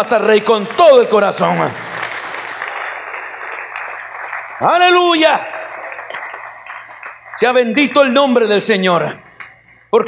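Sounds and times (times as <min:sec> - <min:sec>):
congregation applauding: 0:00.0 - 0:09.6.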